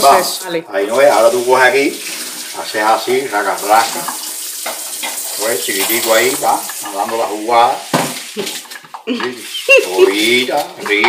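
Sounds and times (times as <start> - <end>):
food frying in a pot: 0.0 - 11.0
person laughing: 9.1 - 10.4.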